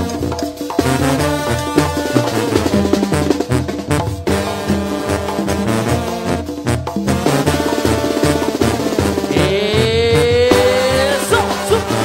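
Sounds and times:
brass band playing: 0:00.0 - 0:12.0
steady drum beat: 0:00.0 - 0:12.0
tuba bass line: 0:00.0 - 0:12.0.

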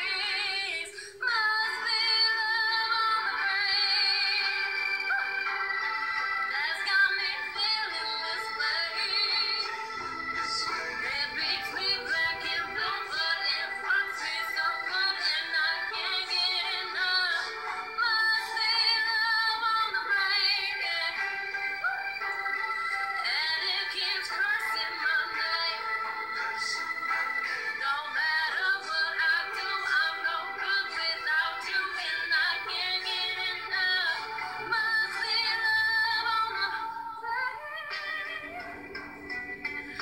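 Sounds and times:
woman singing with vibrato: 0:00.0 - 0:22.3, 0:22.9 - 0:39.1
musical backing: 0:00.0 - 0:40.0.

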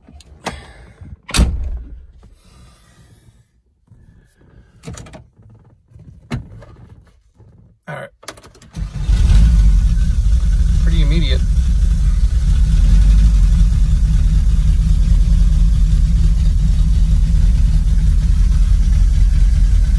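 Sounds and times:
van engine starting and idling: 0:07.9 - 0:19.9.

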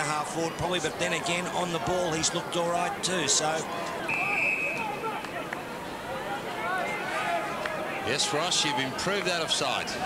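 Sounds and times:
murmur of voices: 0:00.0 - 0:10.0
whistle blast: 0:04.1 - 0:04.9.

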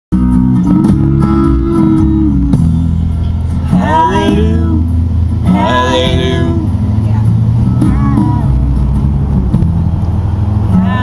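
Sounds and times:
bass-heavy music on car stereo: 0:00.1 - 0:11.0
person shouting: 0:07.7 - 0:08.5.

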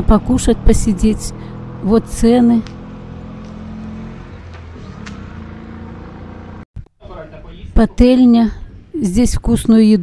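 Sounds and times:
engine running steadily: 0:00.0 - 0:06.6.

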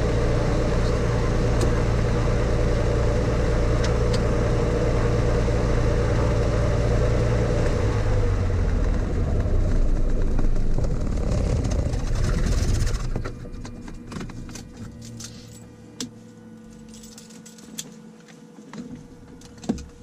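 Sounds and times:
light airplane engine idling: 0:00.0 - 0:20.0.

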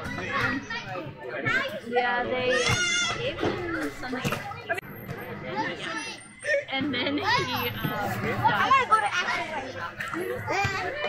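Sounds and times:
children chattering and shouting: 0:00.0 - 0:11.0.

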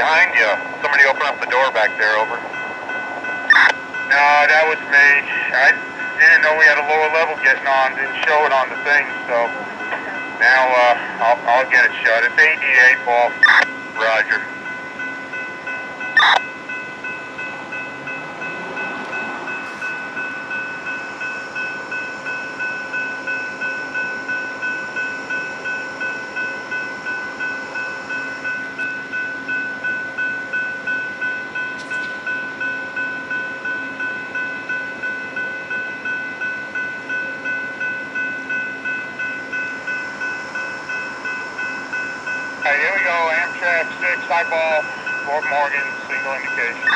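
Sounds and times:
crossing warning bell ringing: 0:00.0 - 0:46.9.

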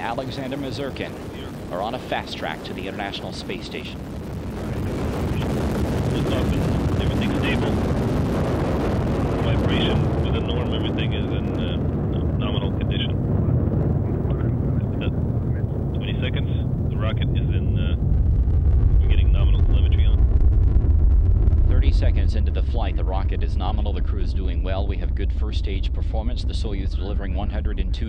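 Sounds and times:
rocket engines rumbling: 0:00.0 - 0:28.0.

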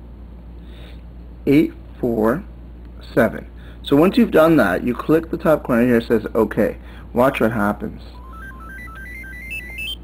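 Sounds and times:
phone power-up tune: 0:08.2 - 0:10.0.

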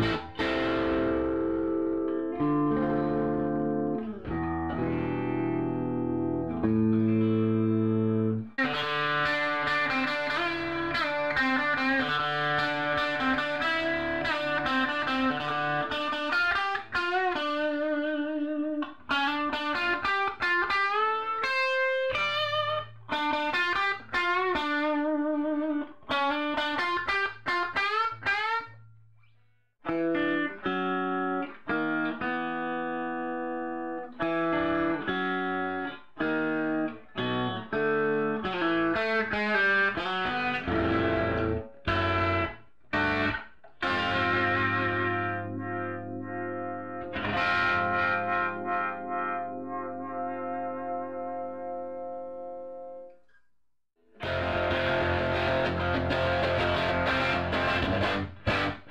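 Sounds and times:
electric guitar playing: 0:00.0 - 0:28.9, 0:29.8 - 0:53.2, 0:54.1 - 0:58.9.

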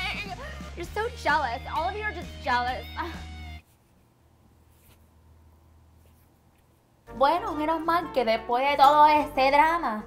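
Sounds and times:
woman exclaiming: 0:00.0 - 0:01.0.

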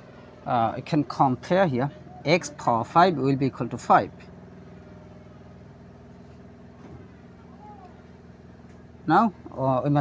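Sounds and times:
motor humming: 0:00.0 - 0:10.0.

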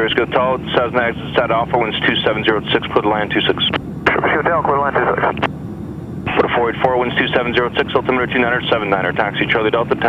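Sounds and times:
air traffic control radio speech: 0:00.0 - 0:05.5, 0:06.3 - 0:10.0
aircraft piston engine drone: 0:00.0 - 0:10.0.

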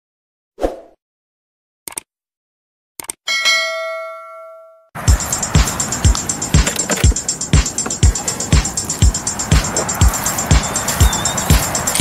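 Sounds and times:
bell ding: 0:03.3 - 0:04.9.

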